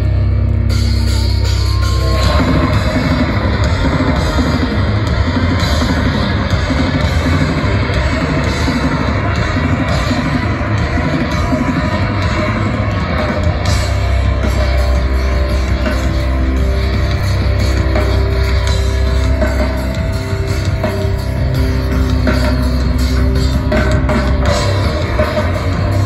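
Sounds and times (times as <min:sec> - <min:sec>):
heavy rock band playing: 0:00.0 - 0:26.0.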